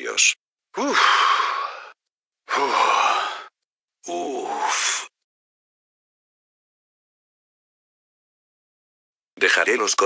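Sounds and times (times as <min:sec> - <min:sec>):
person sighing: 0:00.8 - 0:03.5, 0:04.1 - 0:05.1.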